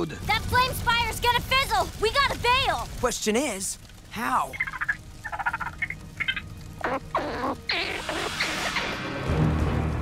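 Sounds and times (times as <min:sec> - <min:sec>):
squeaky cartoon creature babbling: 0:06.8 - 0:08.6.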